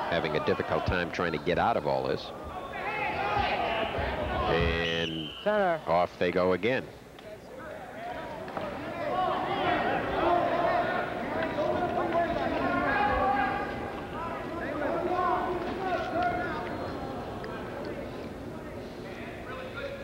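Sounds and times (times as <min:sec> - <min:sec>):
crowd shouting: 0:02.4 - 0:04.6, 0:08.8 - 0:17.2.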